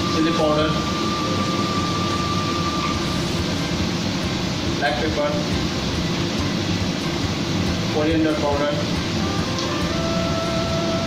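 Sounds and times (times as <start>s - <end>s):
kitchen ventilation rushing: 0.0s - 11.0s.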